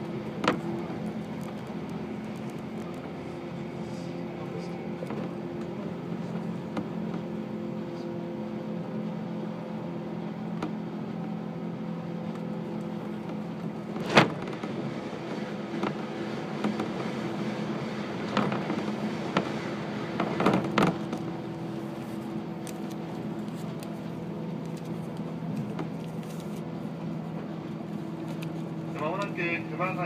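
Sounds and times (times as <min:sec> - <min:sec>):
train cabin rumble: 0:00.0 - 0:30.0.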